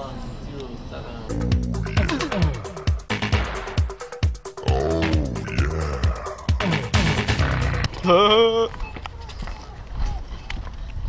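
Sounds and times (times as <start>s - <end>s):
footsteps on pavement: 7.8s - 11.0s.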